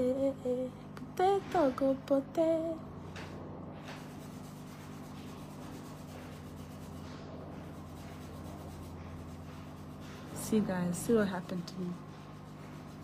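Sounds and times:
low electrical hum: 0.0 - 13.0
gloved hands rubbing skin: 3.8 - 10.4, 11.9 - 13.0.

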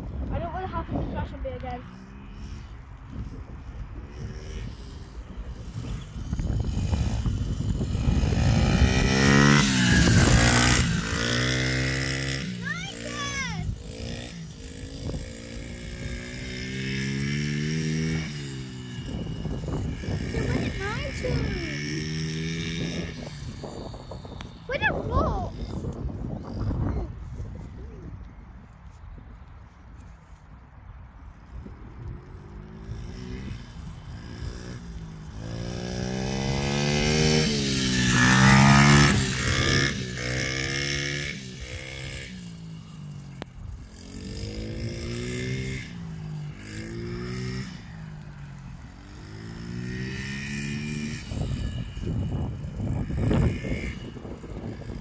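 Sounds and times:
pit bike engine revving: 0.5 - 27.0, 31.5 - 55.0.

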